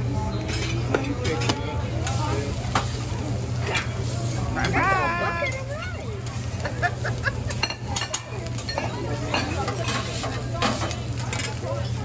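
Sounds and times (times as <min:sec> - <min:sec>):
faint chatter: 0:00.0 - 0:12.0.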